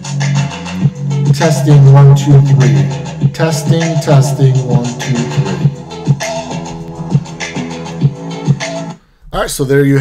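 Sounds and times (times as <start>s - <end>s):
music with steady beat on speaker: 0.0s - 9.1s.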